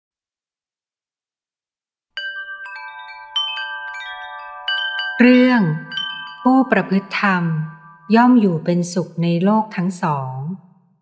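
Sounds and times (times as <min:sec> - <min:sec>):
chimes ringing: 0:02.2 - 0:08.7
person speaking: 0:05.2 - 0:10.6.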